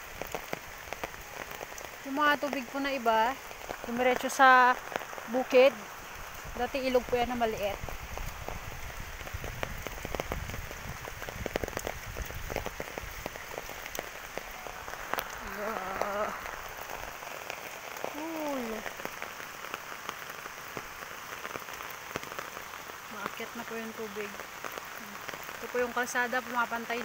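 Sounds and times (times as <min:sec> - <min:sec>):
rain on leaves and ground: 0:00.0 - 0:27.0.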